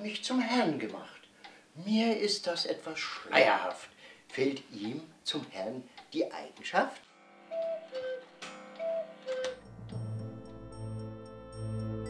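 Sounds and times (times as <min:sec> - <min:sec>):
cuckoo clock calling: 0:07.4 - 0:10.1.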